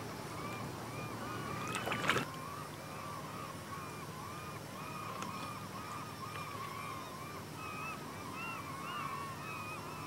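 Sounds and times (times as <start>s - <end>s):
birds chattering: 0.3s - 10.0s.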